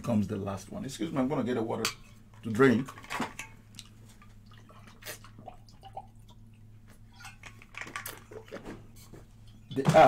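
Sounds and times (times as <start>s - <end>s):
person sipping and swallowing: 3.8s - 6.6s.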